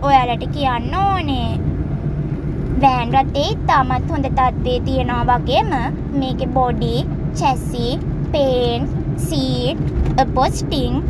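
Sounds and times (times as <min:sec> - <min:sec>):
vehicle engine idling: 0:00.0 - 0:11.0
person speaking: 0:02.8 - 0:11.0.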